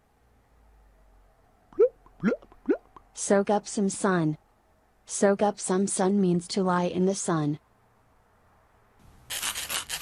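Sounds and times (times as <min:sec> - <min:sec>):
eraser scraping on a board: 0:09.3 - 0:10.0.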